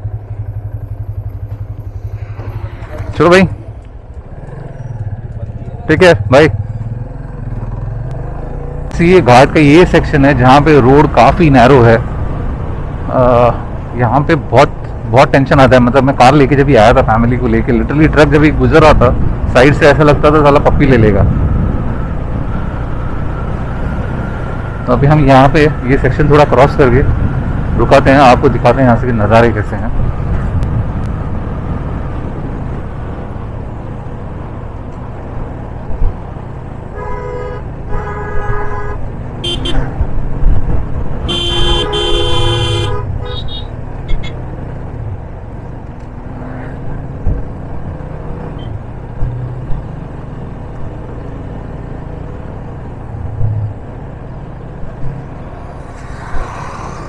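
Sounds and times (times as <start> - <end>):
motorcycle engine rumble: 0.0 - 11.2
wind: 0.0 - 57.0
vehicle horn honking: 36.9 - 39.9, 41.3 - 44.4.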